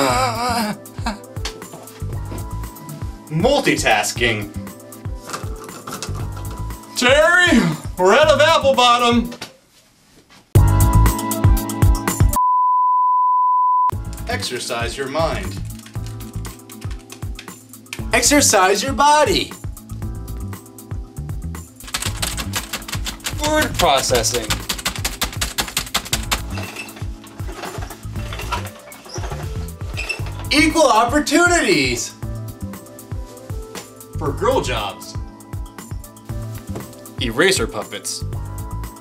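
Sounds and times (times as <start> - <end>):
music with steady beat: 0.1 - 8.5, 10.6 - 12.4, 13.9 - 39.0
fast typing on keyboard: 15.6 - 17.6, 21.8 - 26.8.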